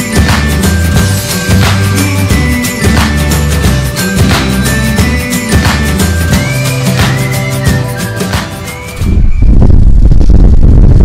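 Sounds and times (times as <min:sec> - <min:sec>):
wind buffeting microphone: 0:09.0 - 0:11.0.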